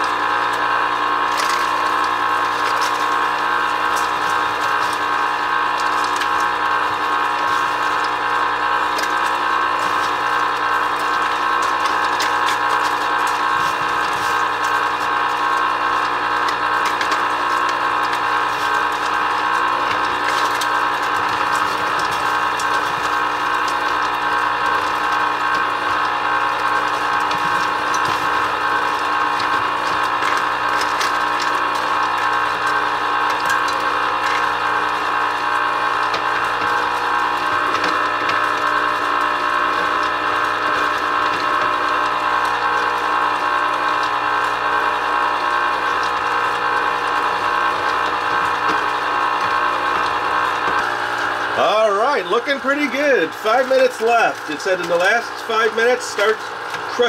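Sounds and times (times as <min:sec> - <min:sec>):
ice cream maker motor hum: 0:00.0 - 0:57.0.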